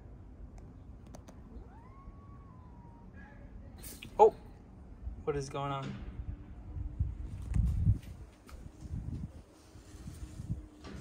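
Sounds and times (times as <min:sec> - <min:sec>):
cat meowing: 0:01.5 - 0:03.5.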